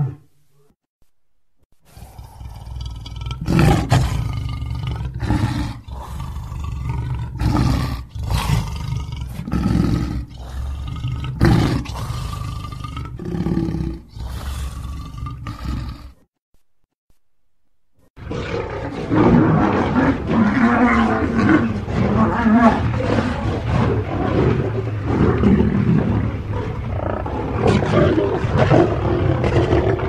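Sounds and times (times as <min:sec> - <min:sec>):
lion roaring: 0:00.0 - 0:00.2, 0:01.9 - 0:16.2, 0:18.2 - 0:30.0.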